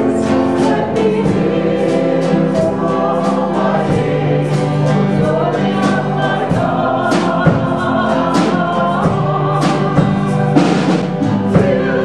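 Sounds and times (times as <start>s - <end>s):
percussion strokes: 0.0s - 12.0s
vocal group singing worship song: 0.0s - 12.0s.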